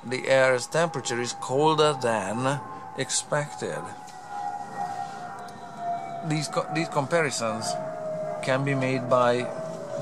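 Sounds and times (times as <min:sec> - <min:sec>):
siren long steady tone: 0:00.0 - 0:10.0.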